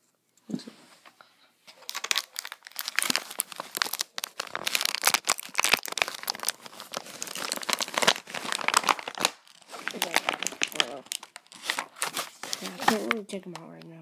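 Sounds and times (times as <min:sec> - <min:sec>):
packaging crinkled by hand: 0:01.7 - 0:13.3.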